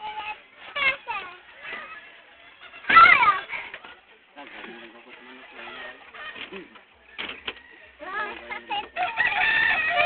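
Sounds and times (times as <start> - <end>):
rooster crowing: 9.0 - 10.0.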